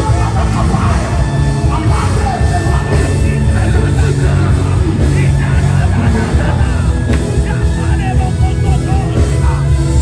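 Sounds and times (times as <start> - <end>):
live worship music with heavy bass: 0.0 - 10.0.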